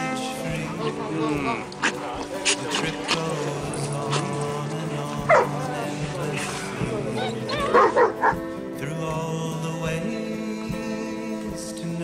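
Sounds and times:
background music: 0:00.0 - 0:12.0
dogs barking: 0:05.2 - 0:05.9, 0:07.0 - 0:08.5.

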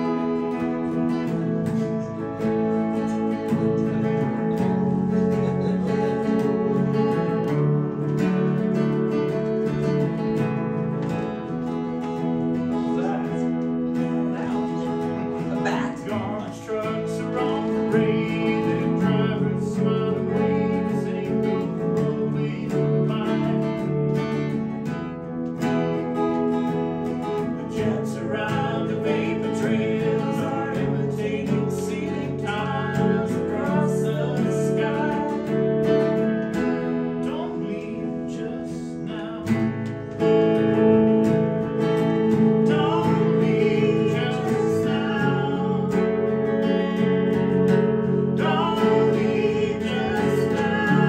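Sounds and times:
person singing: 0:00.0 - 0:24.8, 0:27.2 - 0:51.0
electric guitar: 0:00.0 - 0:51.0
strummed acoustic guitar: 0:00.0 - 0:51.0.

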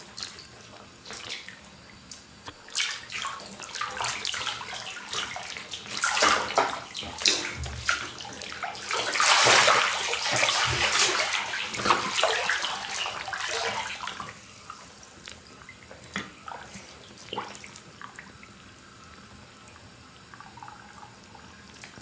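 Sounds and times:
water splashing in a bathtub: 0:00.0 - 0:22.0.

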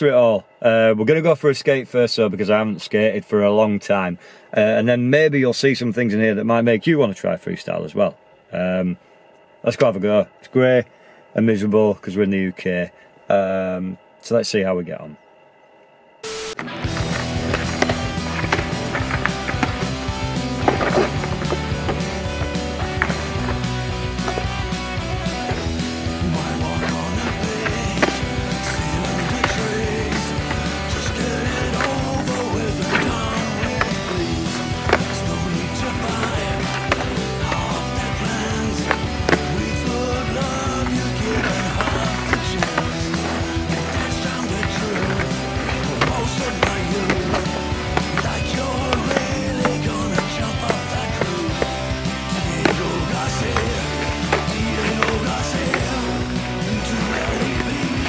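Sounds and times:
background music: 0:16.2 - 0:58.0
skateboard wheels rolling: 0:16.3 - 0:58.0
skateboard deck clacking: 0:16.6 - 0:58.0.

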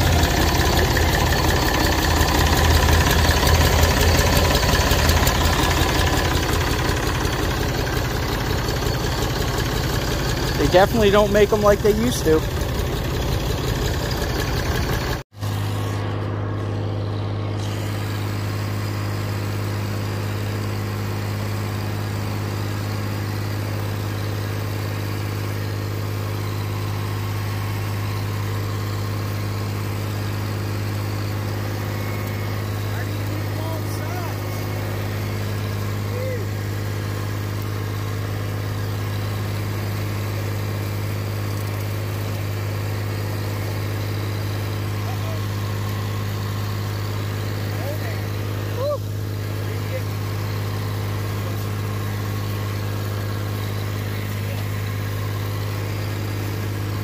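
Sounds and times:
tractor engine humming: 0:00.0 - 0:57.0.

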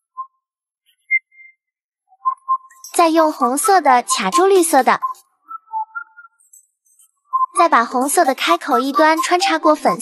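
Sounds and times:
high whistle-like music notes: 0:01.0 - 0:03.0, 0:04.2 - 0:06.5, 0:07.3 - 0:07.6.

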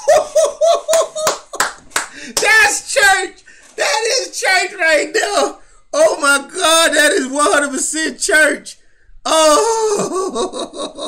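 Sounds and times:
man clapping hands: 0:00.9 - 0:02.5.

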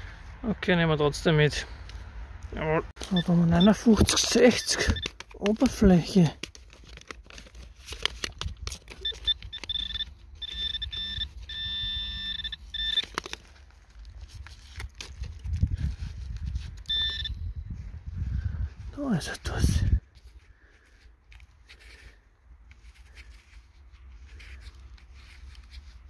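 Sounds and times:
digging and handling clay clods: 0:01.7 - 0:17.9, 0:18.8 - 0:26.0
metal detector high tone: 0:03.1 - 0:05.1, 0:09.0 - 0:13.0, 0:16.9 - 0:17.4.

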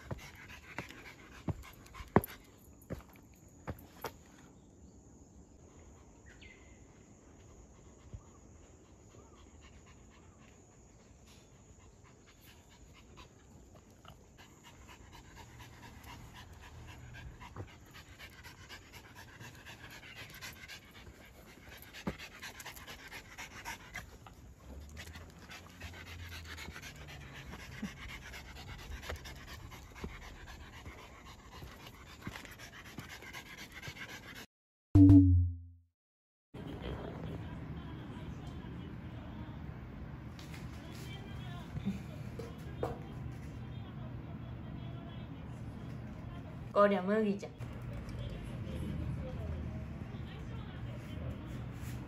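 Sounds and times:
dog panting: 0:00.0 - 0:03.8, 0:07.3 - 0:34.5.

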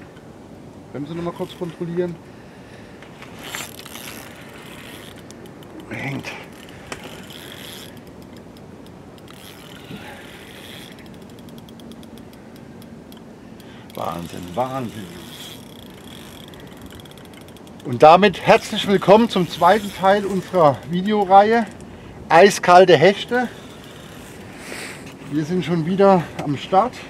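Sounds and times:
steady background noise: 0:00.0 - 0:27.0
fishing reel clicks: 0:03.4 - 0:21.9, 0:23.1 - 0:24.5.

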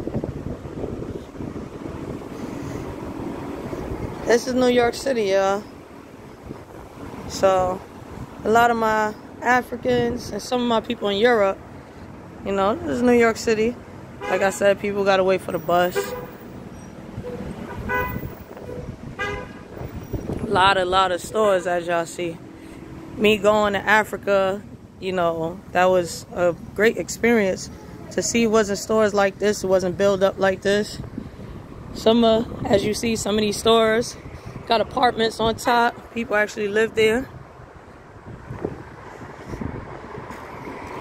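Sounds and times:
city street traffic: 0:00.0 - 0:41.0
wind rumbling on microphone: 0:00.0 - 0:41.0
vehicle horn toots: 0:14.2 - 0:14.6, 0:17.2 - 0:19.8.

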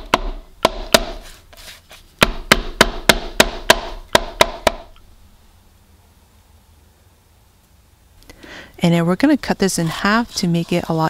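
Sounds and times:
pestle pounding lemongrass: 0:00.0 - 0:01.3, 0:02.2 - 0:04.9.

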